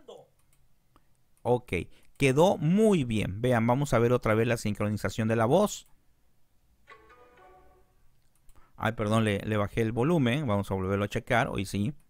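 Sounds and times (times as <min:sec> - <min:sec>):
faint cartoon voice playback: 0:00.0 - 0:00.3.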